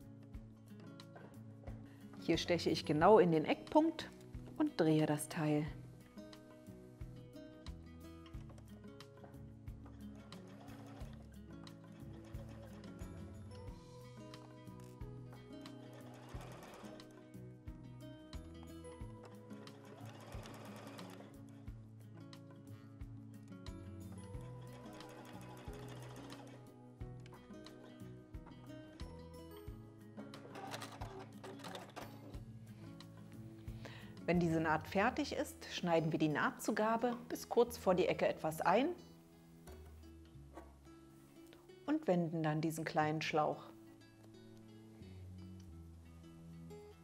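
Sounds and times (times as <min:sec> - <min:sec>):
background music: 0:00.0 - 0:47.0
sewing machine stitching: 0:09.8 - 0:13.4, 0:15.6 - 0:17.2, 0:19.1 - 0:21.4, 0:24.4 - 0:26.7, 0:30.4 - 0:32.4.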